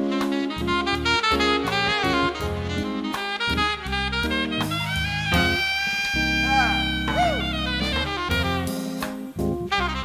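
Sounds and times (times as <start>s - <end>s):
keyboard chords: 0.0s - 10.0s
saxophone solo: 0.0s - 10.0s
drums: 4.5s - 10.0s.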